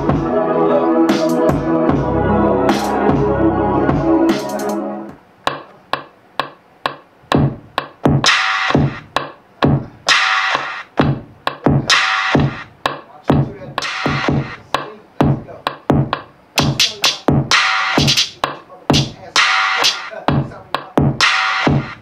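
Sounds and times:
drum machine beat: 0:00.0 - 0:00.4, 0:01.1 - 0:22.0.

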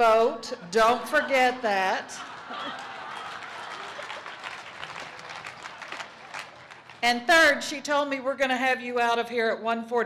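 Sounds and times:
audience applauding: 0:02.2 - 0:07.0.

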